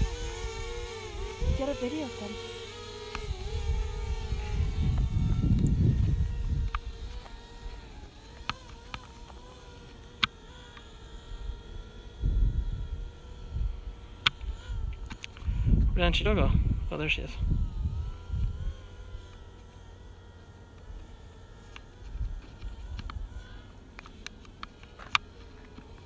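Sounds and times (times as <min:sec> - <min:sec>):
wind buffeting microphone: 0:00.0 - 0:01.9, 0:03.1 - 0:08.0, 0:11.5 - 0:19.3
drone propellers humming: 0:00.0 - 0:26.0.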